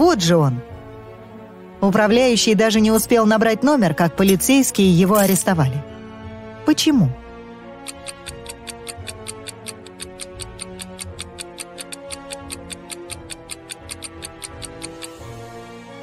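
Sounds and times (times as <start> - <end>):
soft background music: 0.0 - 16.0
fast clock-like ticking: 7.8 - 15.2.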